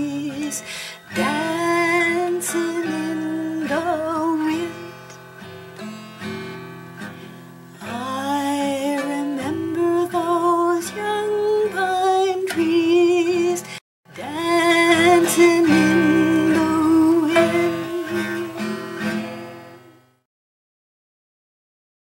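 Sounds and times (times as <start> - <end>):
woman singing: 0.0 - 5.2, 7.8 - 19.5
strummed acoustic guitar: 0.0 - 20.2.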